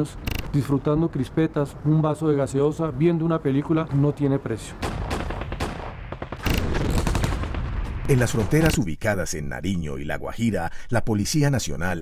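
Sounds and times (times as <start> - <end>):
rapid machine-gun fire: 4.8 - 8.6.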